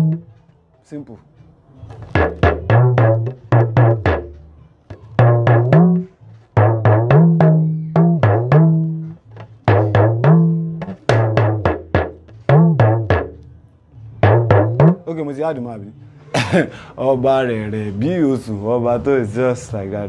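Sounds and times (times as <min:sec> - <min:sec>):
talking drum pitch-bending strokes: 0:01.9 - 0:13.4, 0:14.2 - 0:15.2.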